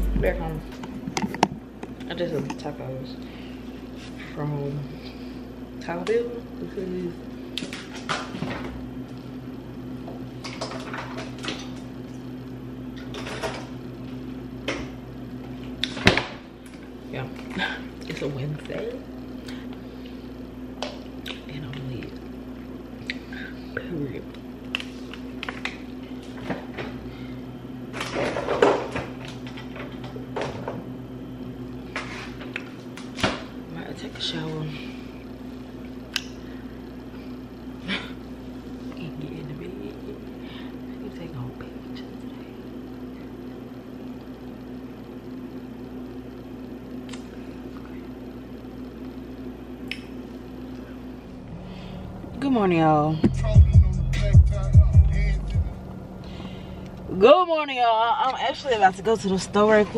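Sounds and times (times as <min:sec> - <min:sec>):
lower drone: 0:00.0 - 0:00.8, 0:51.2 - 0:59.9
steady low hum: 0:00.0 - 0:59.9.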